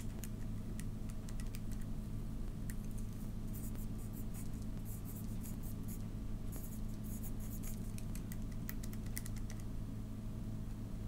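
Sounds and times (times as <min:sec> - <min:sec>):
pencil scratching on paper: 0:03.5 - 0:07.9.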